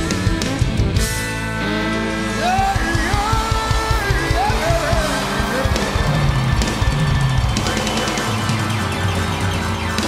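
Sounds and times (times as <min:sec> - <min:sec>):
bass: 0:00.0 - 0:10.0
drums: 0:00.0 - 0:10.0
electric guitar: 0:00.0 - 0:10.0.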